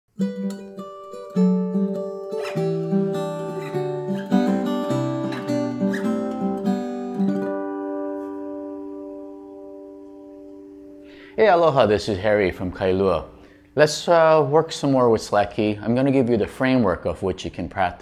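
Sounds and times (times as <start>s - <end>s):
fingerpicked acoustic guitar: 0.2s - 11.4s.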